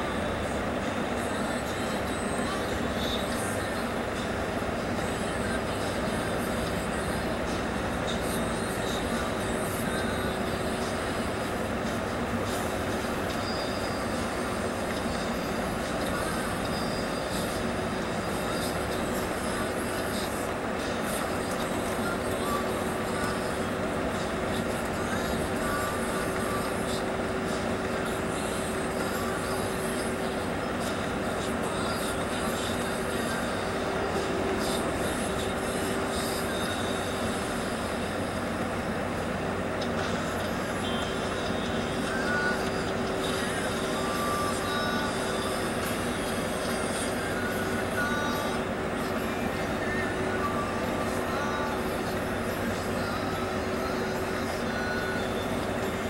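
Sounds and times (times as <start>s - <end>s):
bus engine and tyre rumble: 0.0s - 56.0s
steady whine: 0.0s - 56.0s.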